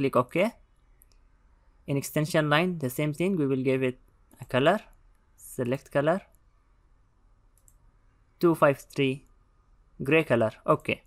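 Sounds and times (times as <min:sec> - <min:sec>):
faint mouse clicking: 0:00.8 - 0:01.4, 0:07.5 - 0:08.0.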